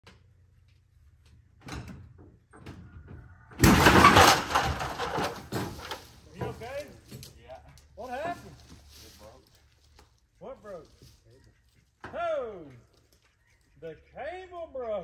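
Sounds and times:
loud crash of cable breaking: 3.6s - 6.0s.

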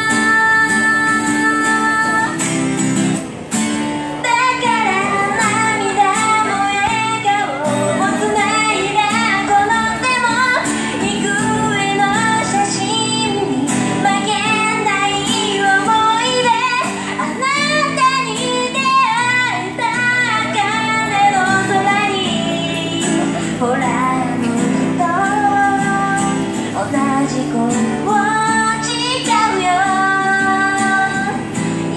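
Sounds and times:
women singing through amplifier: 0.0s - 2.6s, 4.2s - 31.9s
acoustic guitar: 0.0s - 31.9s.

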